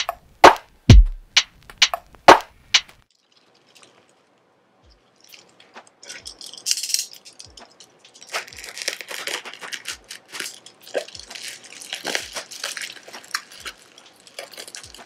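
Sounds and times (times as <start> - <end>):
soft low beat: 0.0 - 2.8
bubble wrap crinkling: 3.0 - 15.0
knife slicing plastic: 8.2 - 15.0.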